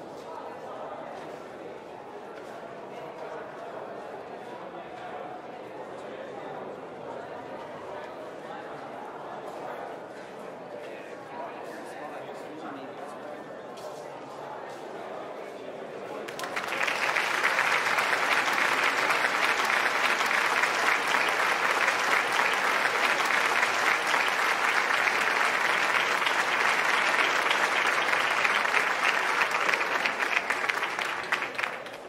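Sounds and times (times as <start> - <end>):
audience applauding: 16.3 - 32.0.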